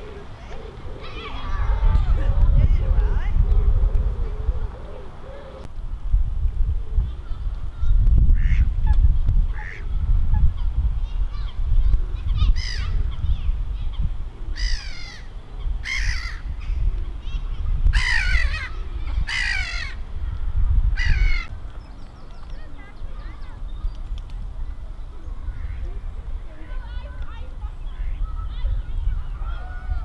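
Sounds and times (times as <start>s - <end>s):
steady low rumble: 0.0s - 22.2s
bird calls: 12.2s - 20.0s, 21.0s - 30.0s.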